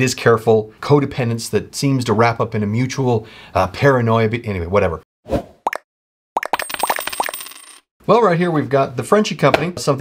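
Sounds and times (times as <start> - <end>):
coin rattling metallic clinks: 6.6 - 7.8.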